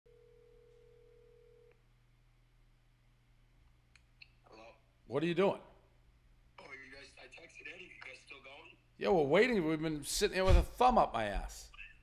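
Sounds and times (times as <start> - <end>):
faint steady electronic tone: 0.1 - 2.2
low electrical hum: 0.1 - 12.0.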